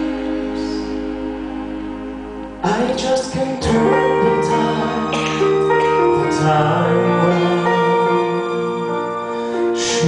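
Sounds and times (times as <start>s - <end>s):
strings and keyboard chord: 0.0s - 10.0s.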